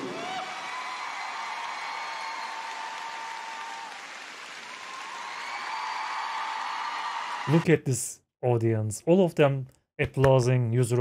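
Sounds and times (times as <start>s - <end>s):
large audience applauding: 0.0s - 7.6s.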